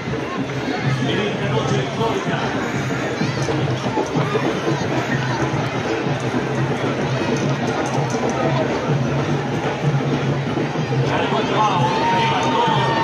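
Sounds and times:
crowd voices: 0.0s - 13.0s
drums playing pulsing rhythm: 0.0s - 13.0s.

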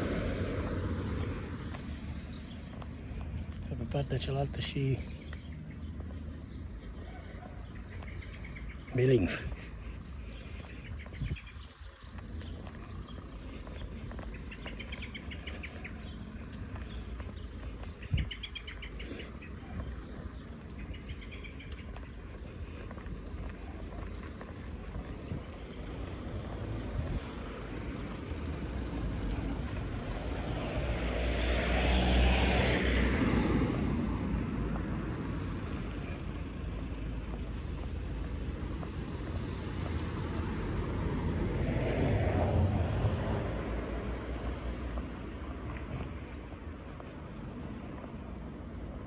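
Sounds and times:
vehicles passing: 0.0s - 49.0s.

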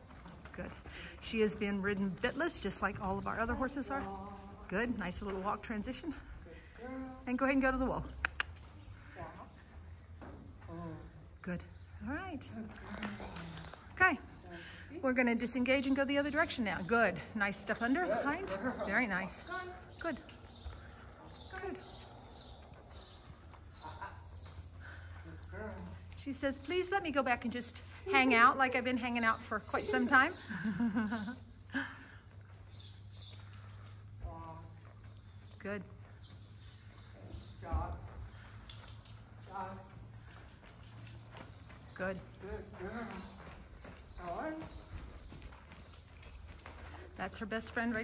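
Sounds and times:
horse hooves trotting on sand: 0.0s - 48.0s.

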